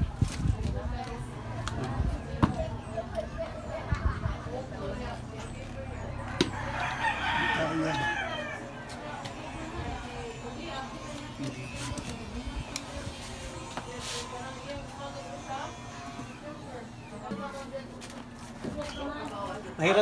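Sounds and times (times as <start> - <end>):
faint background voices: 0.0 - 20.0.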